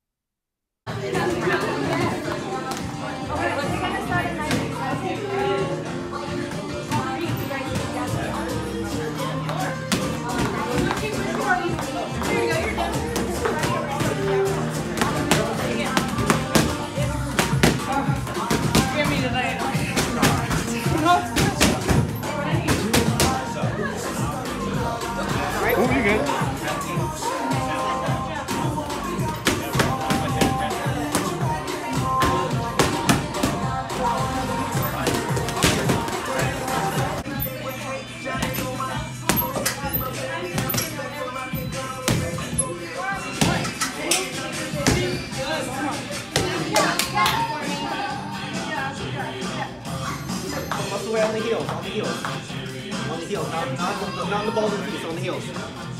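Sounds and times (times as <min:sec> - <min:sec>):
music with voices: 0:00.9 - 0:55.9.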